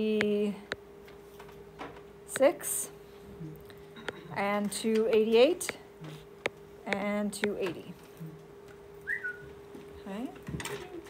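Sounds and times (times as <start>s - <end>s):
steady faint hum: 0.0s - 11.0s
falling whistle-like squeak: 9.0s - 9.5s.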